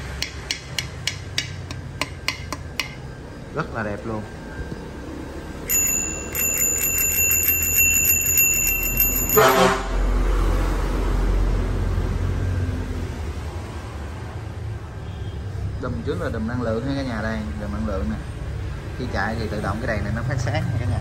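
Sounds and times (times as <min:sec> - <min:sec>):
bicycle bell ringing: 0:05.6 - 0:10.1.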